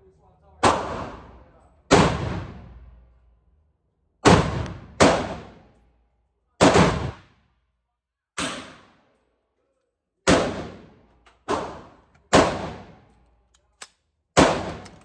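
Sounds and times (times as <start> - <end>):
gunshots with reverberant tail: 0.6 - 3.0, 4.2 - 5.8, 6.6 - 7.4, 10.2 - 13.1, 14.4 - 15.0.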